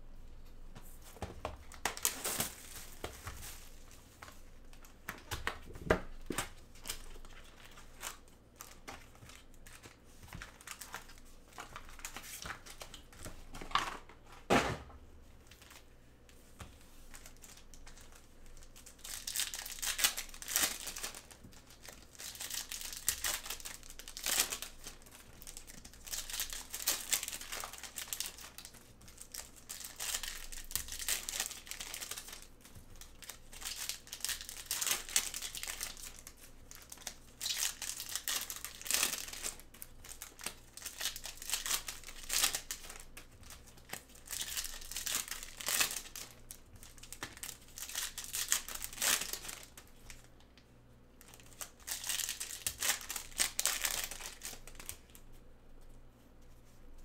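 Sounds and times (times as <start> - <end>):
foil wrappers crinkling: 1.1 - 14.1, 17.1 - 50.4, 51.2 - 55.2.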